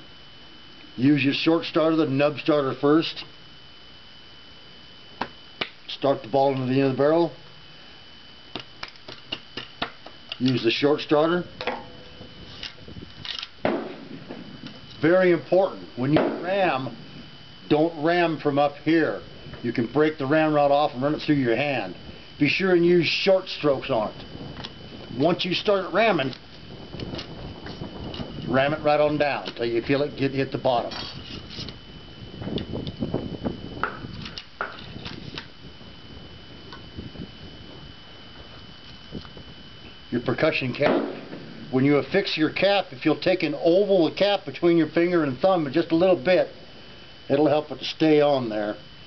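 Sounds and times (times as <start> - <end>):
faint high whine: 0.0 - 49.0.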